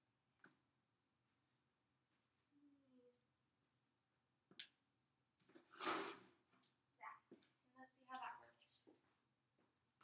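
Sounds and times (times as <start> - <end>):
plastic container scraping on tile: 5.5 - 6.4.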